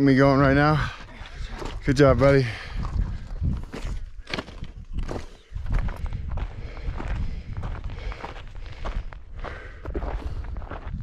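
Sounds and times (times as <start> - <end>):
footsteps crunching on gravel: 0.6 - 11.0.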